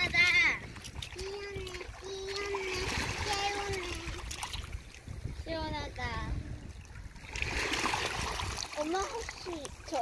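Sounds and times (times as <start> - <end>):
small waves lapping: 0.0 - 10.0.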